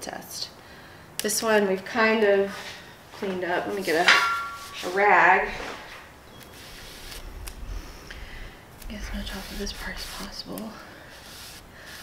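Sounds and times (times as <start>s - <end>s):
rag rustling: 3.3s - 12.0s.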